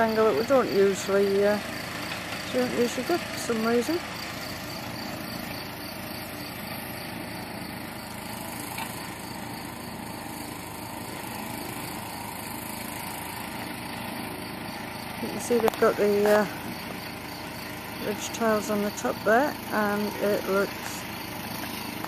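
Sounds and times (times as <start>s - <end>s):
crickets chirping: 0.0s - 22.0s
outdoor background noise: 0.0s - 22.0s.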